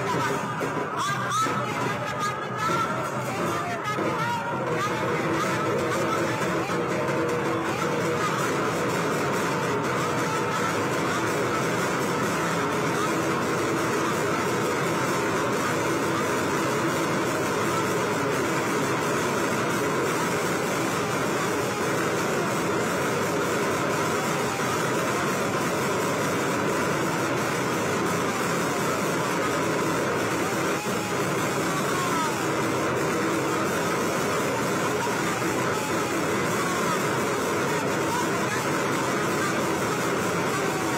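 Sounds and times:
street crowd voices: 0.0 - 40.9.

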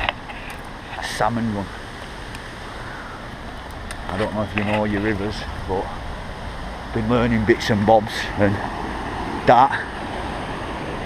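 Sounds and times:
outdoor rushing noise: 0.0 - 11.0.

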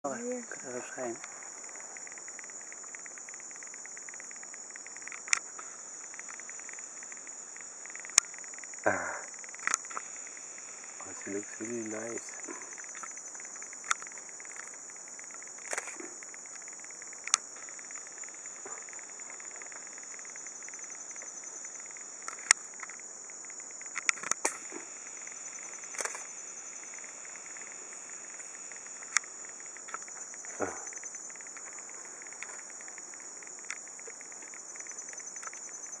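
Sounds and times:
night insects trilling: 0.0 - 36.0
sharp clicks and knocks: 21.9 - 24.9.

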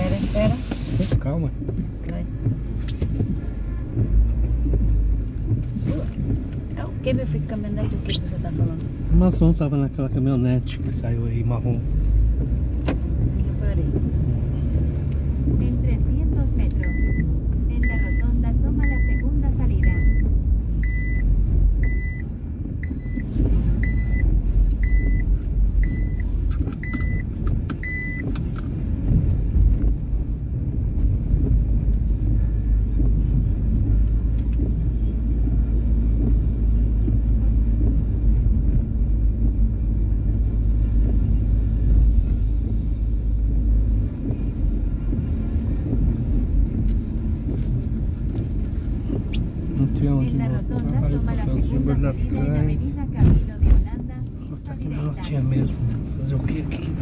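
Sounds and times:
car cabin road rumble: 0.0 - 57.0
electronic warning beep: 16.8 - 26.2, 26.8 - 28.3.

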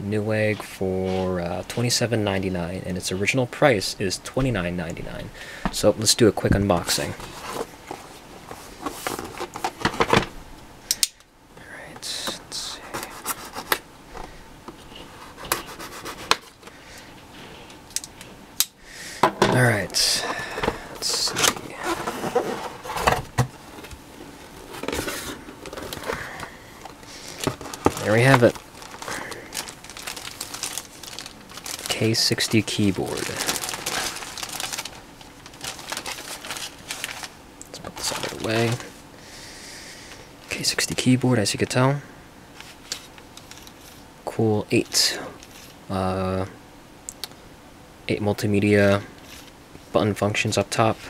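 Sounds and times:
plastic bag crinkling: 23.7 - 38.9.

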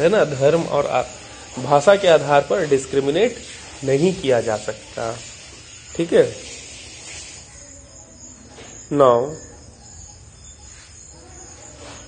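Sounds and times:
low steady hiss: 0.0 - 11.9
crickets chirring: 0.0 - 12.0.

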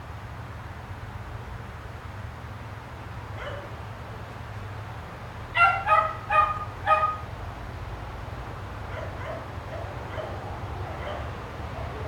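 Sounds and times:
dog yipping: 5.6 - 7.2, 8.9 - 10.4, 11.0 - 11.3.

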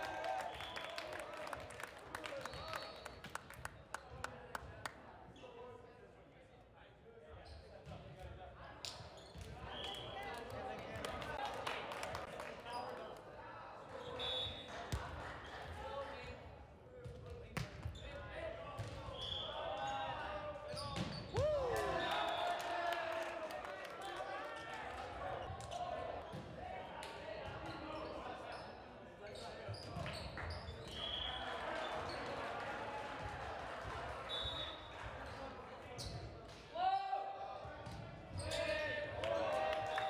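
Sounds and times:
sneaker squeaks: 7.3 - 8.0, 8.9 - 10.2, 18.8 - 21.5, 27.6 - 32.3, 34.3 - 36.4, 38.3 - 38.9.

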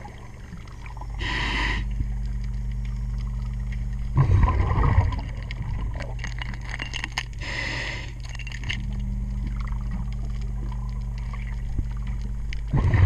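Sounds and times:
bubbles crackling and popping: 0.0 - 13.0
steady low hum: 0.0 - 13.0
regulator inhale hiss: 1.2 - 2.0, 7.4 - 8.3
gush of bubbles: 4.2 - 5.8.

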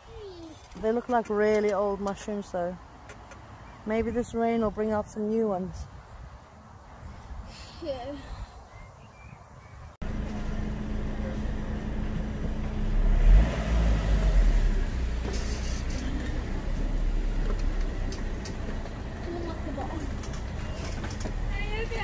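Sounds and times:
car engine idling: 10.0 - 22.0.

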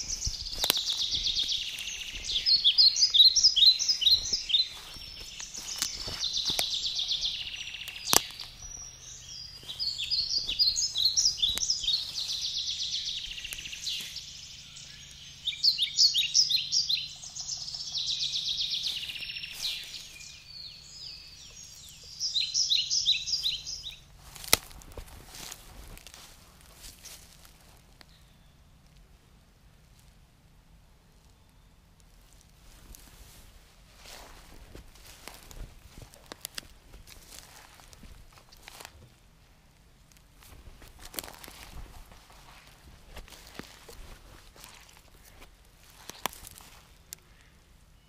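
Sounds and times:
rustles in dry leaf litter: 0.0 - 15.1, 18.3 - 21.1, 23.0 - 28.0, 32.2 - 39.0, 40.4 - 47.2
songbird singing trill: 0.0 - 26.2, 27.4 - 28.9, 30.9 - 32.1, 34.0 - 39.1, 40.2 - 48.0
faint low hum: 0.0 - 48.0.

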